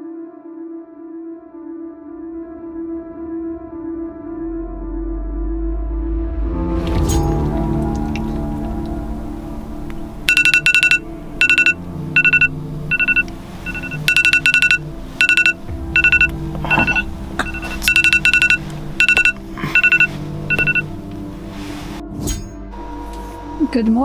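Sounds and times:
soft background music: 0.0 - 24.0
smartphone alarm beeps: 10.3 - 20.9.

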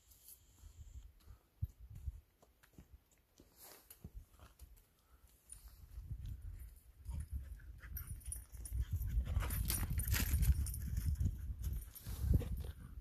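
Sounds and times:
wind rumbling on microphone: 5.7 - 13.0.

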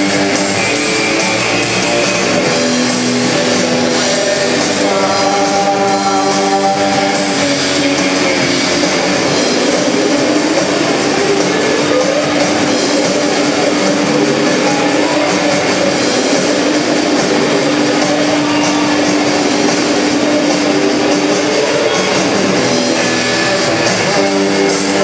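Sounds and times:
distorted electric guitars: 0.0 - 25.0
noise rock band playing loud: 0.0 - 25.0.

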